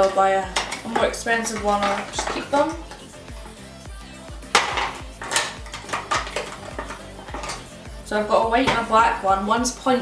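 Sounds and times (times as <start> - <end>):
plastic packet clicks and clatter: 4.6 - 7.6.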